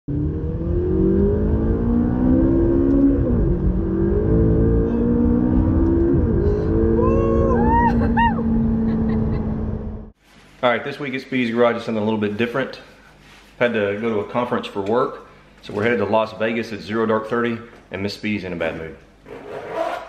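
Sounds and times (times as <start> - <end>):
car engine accelerating hard: 0.1 - 10.1
person whooping: 6.4 - 9.0.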